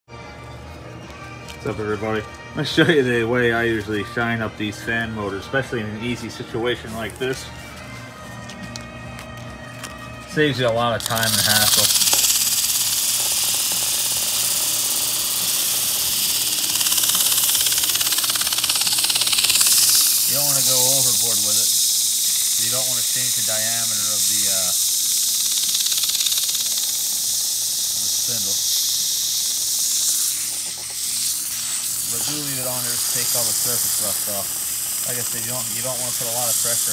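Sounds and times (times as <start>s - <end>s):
fan motor hum: 0.2s - 36.9s
sandpaper hissing on spinning shaft: 1.1s - 8.4s, 10.0s - 36.9s.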